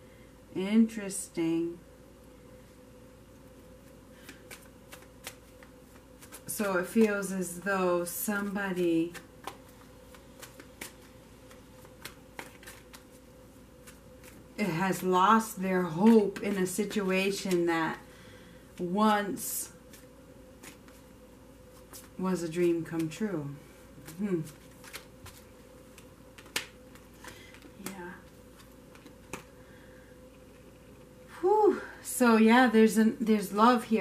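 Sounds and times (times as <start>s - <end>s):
cards being shuffled: 3.6s - 7.6s, 8.4s - 15.1s, 15.8s - 17.7s, 19.8s - 21.1s, 21.7s - 23.2s, 24.0s - 29.6s.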